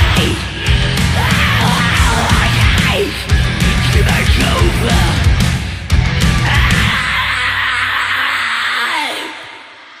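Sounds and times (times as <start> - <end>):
heavy metal music noise: 0.0 - 9.7.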